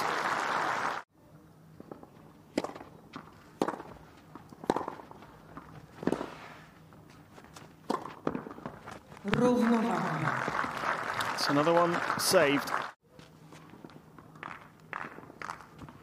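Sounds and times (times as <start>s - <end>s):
crowd applause: 0.0s - 1.1s, 9.4s - 13.0s
rackets striking tennis ball: 1.9s - 6.4s, 7.8s - 9.4s.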